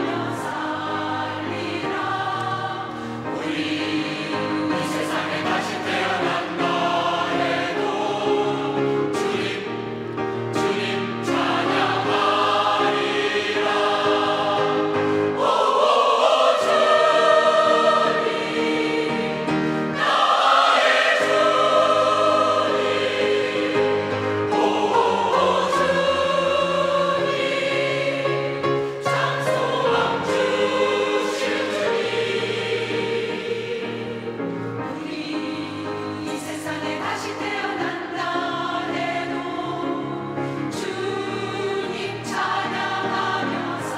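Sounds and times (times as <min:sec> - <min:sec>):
mixed choir singing a hymn: 0:00.0 - 0:43.9.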